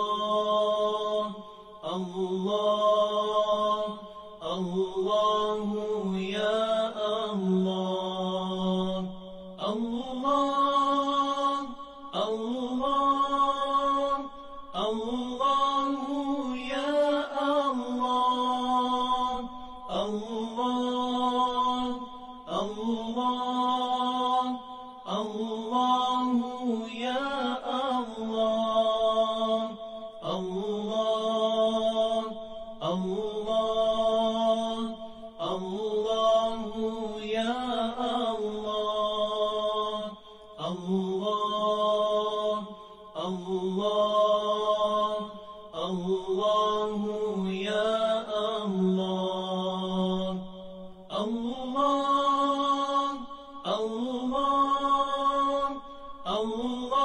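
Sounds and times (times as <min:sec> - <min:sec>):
person chanting a melody: 0:00.0 - 0:57.0.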